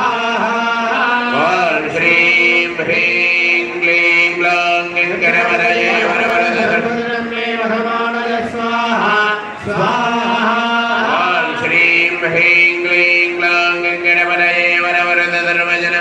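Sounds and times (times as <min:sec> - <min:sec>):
priests chanting: 0:00.0 - 0:16.0.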